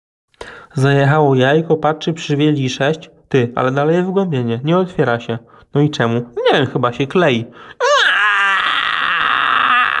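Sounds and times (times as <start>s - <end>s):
loud high-pitched scream: 7.8s - 10.0s.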